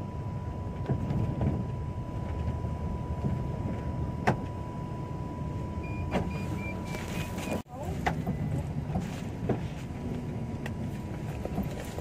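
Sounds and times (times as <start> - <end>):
engine and road rumble: 0.0 - 12.0
thin constant whine: 0.0 - 12.0.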